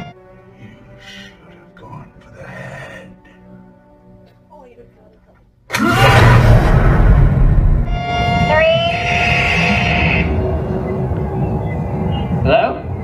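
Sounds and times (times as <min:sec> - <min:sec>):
loud sound effects blast: 0:05.7 - 0:10.6
deep rumble: 0:06.0 - 0:13.0.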